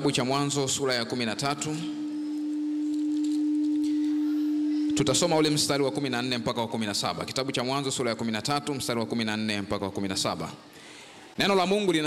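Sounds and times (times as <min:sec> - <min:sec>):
steady electronic tone: 0:00.0 - 0:10.7.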